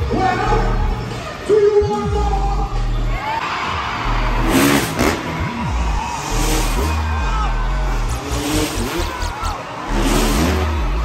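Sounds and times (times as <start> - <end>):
music with heavy bass beat: 0.0 - 11.0
dirt bike engine revving: 4.0 - 11.0.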